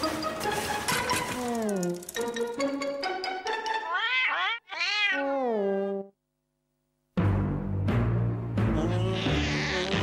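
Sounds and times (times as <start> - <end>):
cartoon cat crying: 3.8 - 6.1, 8.8 - 10.0.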